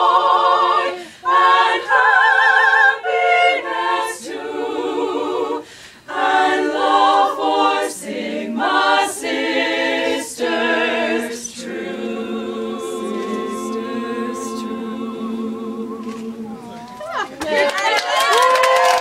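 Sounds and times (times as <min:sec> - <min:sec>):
women singing a cappella: 0:00.0 - 0:18.0.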